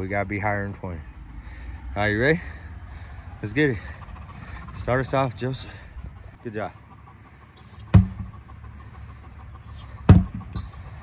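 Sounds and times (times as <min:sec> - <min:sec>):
sledgehammer thudding on tire: 0:07.8 - 0:08.3, 0:10.0 - 0:10.7.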